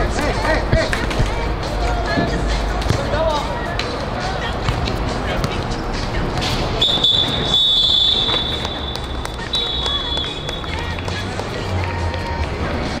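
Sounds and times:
referee's whistle blasts: 6.8 - 11.0
voices across pitch: 6.8 - 12.4.

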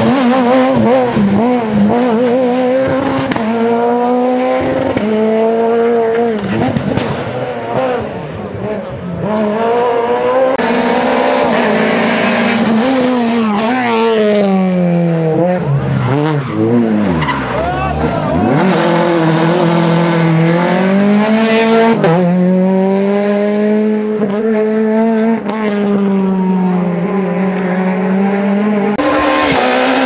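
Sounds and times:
rally car engine revving: 0.0 - 30.0.

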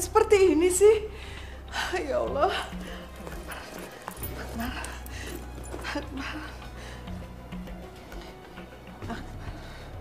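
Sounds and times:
woman whimpering and sobbing: 1.7 - 7.1.

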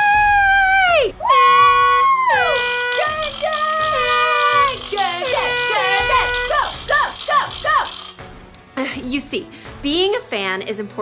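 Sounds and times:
ratchet rattle clattering: 2.5 - 8.2.

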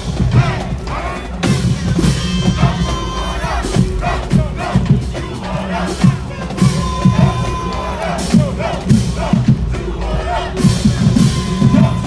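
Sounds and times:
drumline playing cadence: 0.0 - 12.0
people shouting: 0.0 - 12.0.

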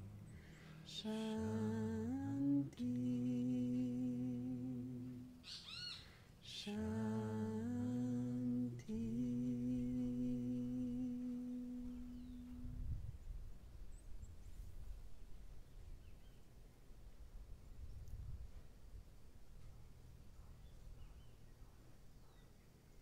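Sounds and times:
voices humming a mantra: 0.0 - 12.9
high chirps: 5.4 - 6.8.

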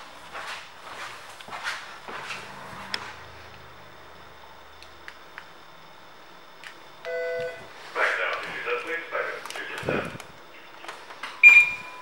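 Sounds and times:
electronic beep: 11.4 - 12.0.

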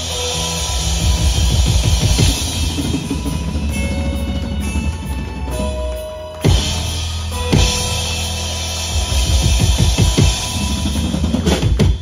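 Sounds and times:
rock band playing: 0.0 - 12.0
drum fill: 8.9 - 12.0.

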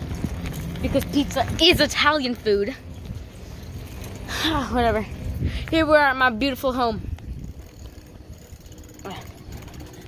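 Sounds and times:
bicycle freewheel ticking: 0.0 - 10.0
low rumble: 0.0 - 10.0.

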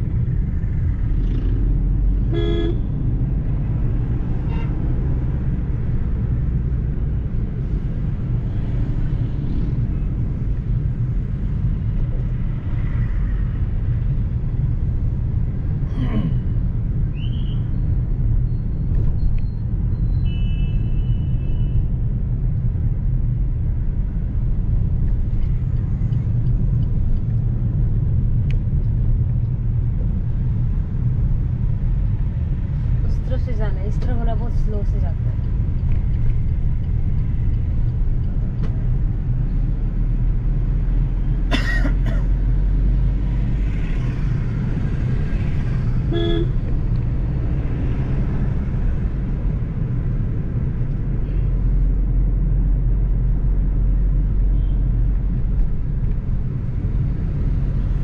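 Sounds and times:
car road and engine rumble: 0.0 - 58.0
car horn toots: 46.1 - 46.6.

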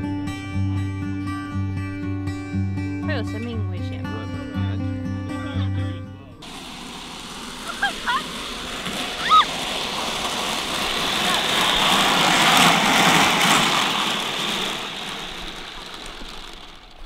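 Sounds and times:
grass sled rolling and rattling: 0.0 - 17.0.

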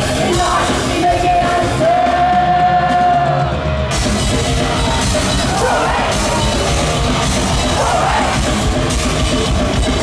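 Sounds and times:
drums and cymbals: 0.0 - 10.0
live rock band: 0.0 - 10.0.

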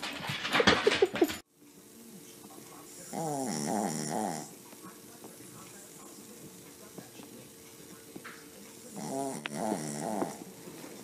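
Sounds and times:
dog snoring in sleep: 3.0 - 4.6, 8.8 - 10.6.

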